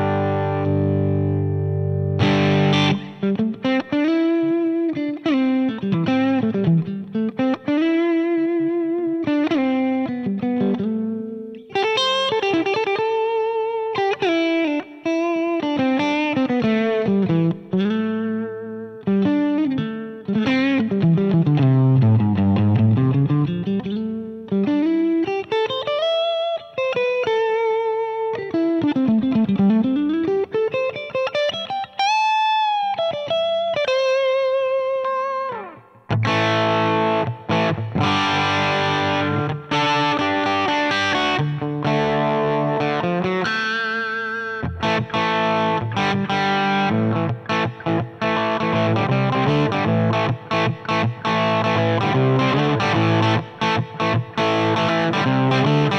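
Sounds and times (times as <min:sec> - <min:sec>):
electric guitar lead with vibrato: 0:00.0 - 0:55.9.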